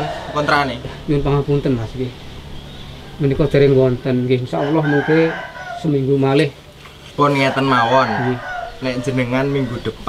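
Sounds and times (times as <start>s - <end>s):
rooster crowing: 0.0s - 0.9s, 2.7s - 6.4s, 7.2s - 10.0s
man talking: 0.0s - 2.2s, 7.2s - 10.0s.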